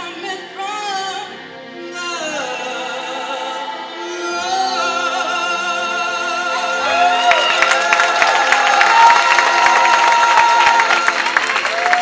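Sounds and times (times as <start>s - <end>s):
choir singing: 0.0s - 11.5s
audience applauding and cheering: 6.8s - 12.0s
whoops: 6.8s - 12.0s.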